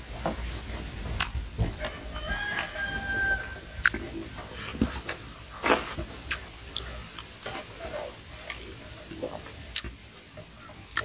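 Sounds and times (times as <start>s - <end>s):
rooster crowing: 1.7s - 3.8s
person eating with fingers: 3.8s - 11.0s.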